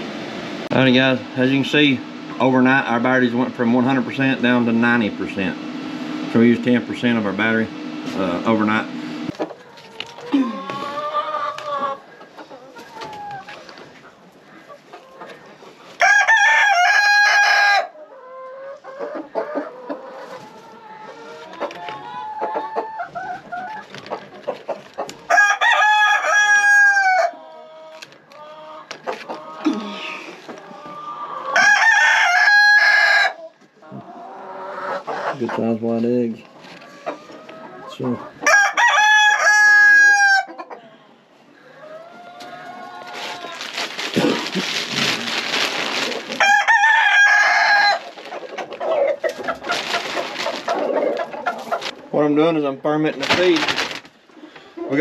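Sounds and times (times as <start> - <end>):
hens clucking: 0.2 - 55.0
rooster crowing: 16.0 - 18.0, 25.3 - 27.4, 31.4 - 33.4, 38.4 - 40.6, 46.3 - 48.1.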